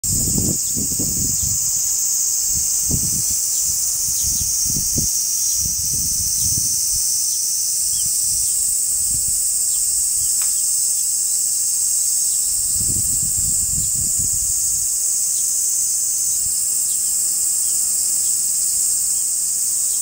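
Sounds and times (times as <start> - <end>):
wind rumbling on microphone: 0.0 - 7.2, 7.8 - 10.4, 12.4 - 14.9
high-pitched insect chorus: 0.0 - 20.0.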